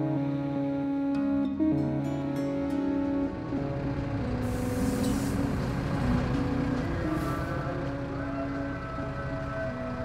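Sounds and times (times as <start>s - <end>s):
bus engine rumbling: 0.0s - 10.0s
compressed air hiss: 4.4s - 5.5s.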